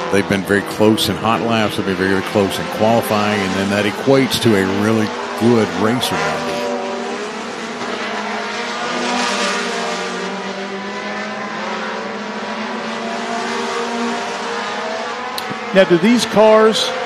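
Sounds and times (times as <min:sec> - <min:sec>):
race car engines: 0:00.0 - 0:17.0.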